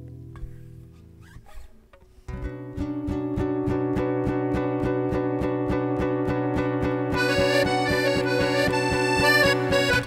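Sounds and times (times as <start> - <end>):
fingers squeaking on guitar strings: 0.9 - 2.1
guitars and accordion chord ringing: 2.4 - 10.0.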